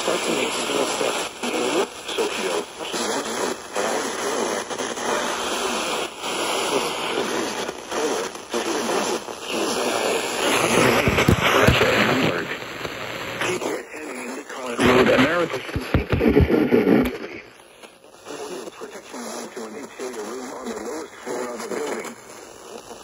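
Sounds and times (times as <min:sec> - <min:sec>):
radio speech from small speaker: 0:00.0 - 0:17.6, 0:18.2 - 0:23.0
burst of noise: 0:00.0 - 0:23.0
radio hiss: 0:00.0 - 0:23.0.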